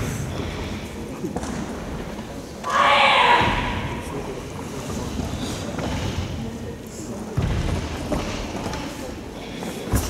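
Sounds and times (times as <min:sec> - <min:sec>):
person shouting in a hall: 0:02.6 - 0:04.1.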